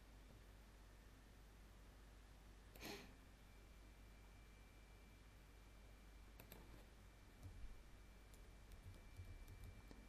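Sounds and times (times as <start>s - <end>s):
computer mouse clicks: 6.3s - 7.6s, 8.3s - 10.0s.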